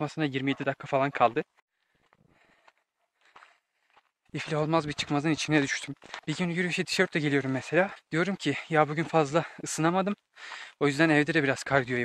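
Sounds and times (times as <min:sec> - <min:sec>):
footsteps on gravel: 0:01.9 - 0:09.6.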